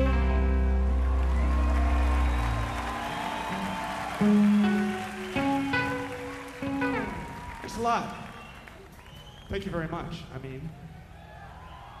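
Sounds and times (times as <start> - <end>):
crowd cheering: 0.4 - 9.9, 10.7 - 12.0
held guitar notes: 3.5 - 7.4.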